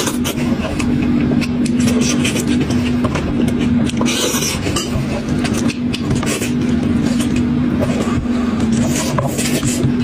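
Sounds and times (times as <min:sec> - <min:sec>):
loud low hum: 0:00.0 - 0:10.0.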